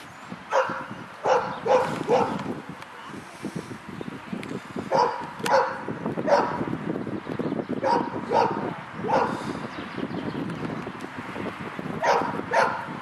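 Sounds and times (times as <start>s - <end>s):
dog barking: 0.5s - 2.4s, 4.9s - 6.6s, 7.8s - 9.4s, 12.0s - 12.9s.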